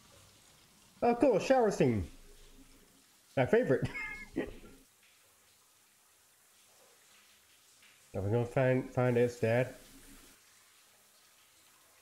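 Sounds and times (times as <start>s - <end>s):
man's high-pitched laugh: 3.8s - 4.7s.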